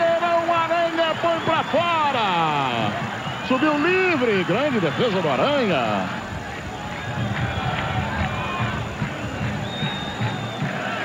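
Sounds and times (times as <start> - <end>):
stadium crowd noise: 0.0 - 11.0
short high whistle tones: 9.6 - 10.7.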